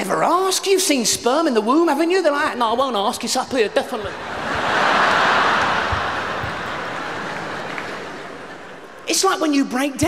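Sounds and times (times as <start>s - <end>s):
audience laughing: 4.1s - 9.0s
audience clapping: 4.3s - 9.0s.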